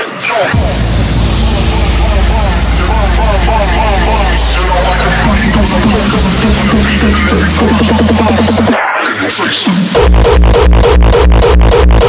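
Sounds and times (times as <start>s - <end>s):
harsh noisy synth texture: 0.5s - 12.0s
high whistle sweeping down: 0.6s - 8.6s
sub-bass drone: 0.6s - 8.8s, 10.0s - 12.0s.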